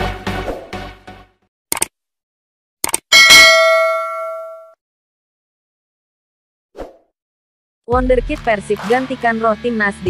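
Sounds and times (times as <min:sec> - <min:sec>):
click: 0:01.7 - 0:01.9, 0:02.8 - 0:03.0
bright bell ding: 0:03.1 - 0:04.8.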